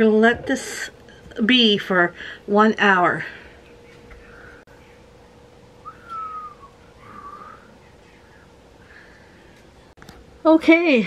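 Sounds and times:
faint steady hum: 0.0 - 11.0
soft whistled notes: 5.8 - 8.5.

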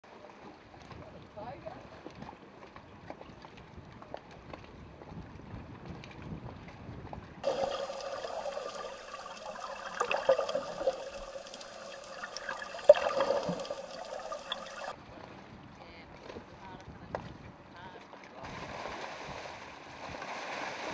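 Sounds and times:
underwater gurgling and sloshing: 7.4 - 14.9
faint surface water noise: 7.4 - 15.0.

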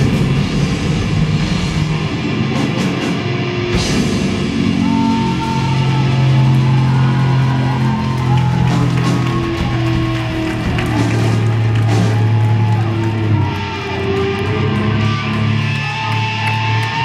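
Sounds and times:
rock band playing: 0.0 - 17.0.

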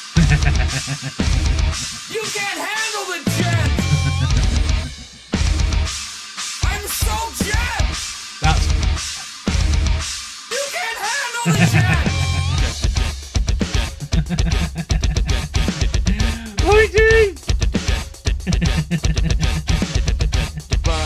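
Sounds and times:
distorted electric guitar riffs: 0.0 - 2.1, 3.3 - 6.0, 6.7 - 10.0, 11.5 - 21.0
drums: 0.0 - 21.0.

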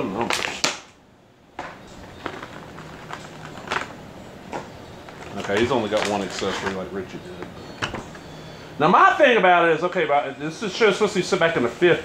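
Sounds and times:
packaging clicks and rustles: 1.7 - 4.0, 4.6 - 8.2.

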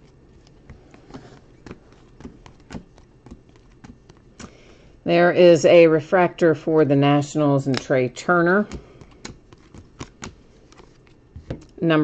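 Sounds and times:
cards flipping: 0.0 - 4.7, 8.7 - 11.8.

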